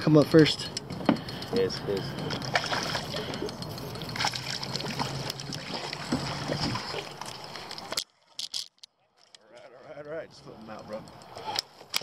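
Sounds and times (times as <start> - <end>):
water splashing and dripping: 0.8 - 8.4.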